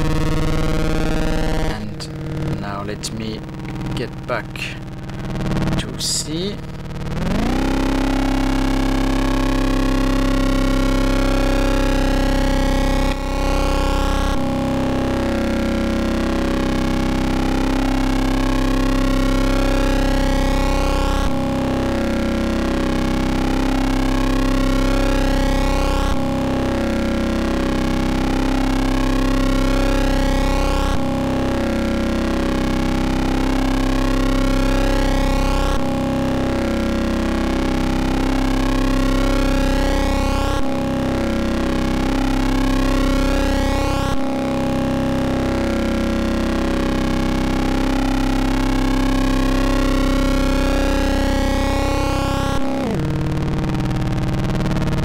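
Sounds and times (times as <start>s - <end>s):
distorted buzzy synthesizer tone: 0.0s - 55.0s.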